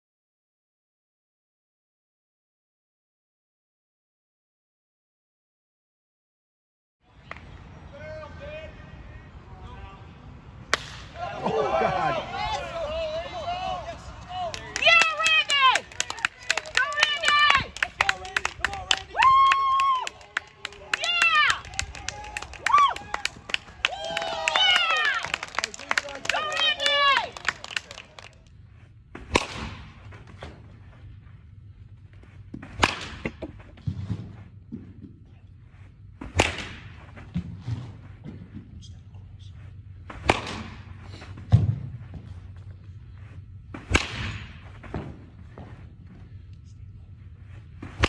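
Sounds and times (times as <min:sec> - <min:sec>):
bat cracking a baseball: 0:10.7 - 0:11.2, 0:29.2 - 0:30.0, 0:32.6 - 0:33.5, 0:36.2 - 0:37.0, 0:40.1 - 0:40.9, 0:43.7 - 0:45.2
people shouting and cheering: 0:11.0 - 0:28.3.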